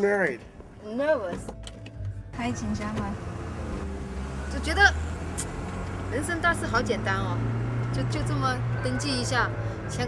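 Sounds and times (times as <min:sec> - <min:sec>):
road noise: 0:00.4 - 0:10.0
car engine rumble: 0:00.6 - 0:10.0.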